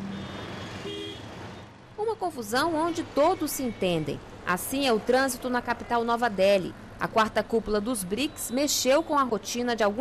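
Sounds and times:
city street traffic: 0:00.0 - 0:10.0.

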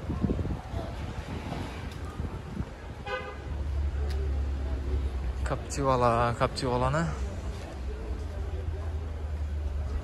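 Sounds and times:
car horn toot: 0:03.0 - 0:03.4.

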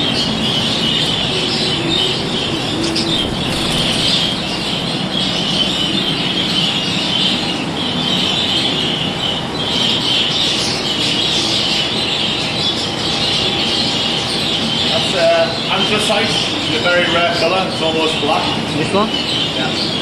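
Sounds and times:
budgerigars chattering: 0:00.0 - 0:20.0
ventilation fans: 0:00.0 - 0:20.0.

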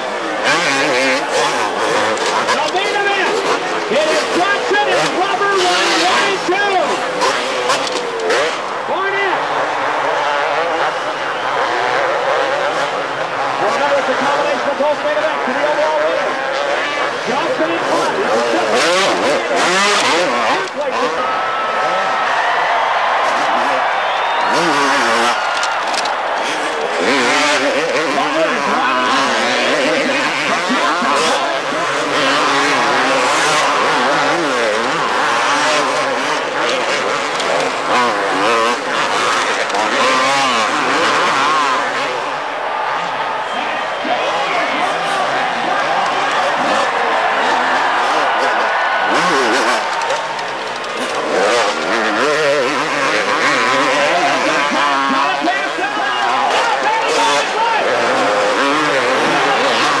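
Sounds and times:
motorcycle engines revving: 0:00.0 - 1:00.0
stadium crowd noise: 0:00.0 - 1:00.0.

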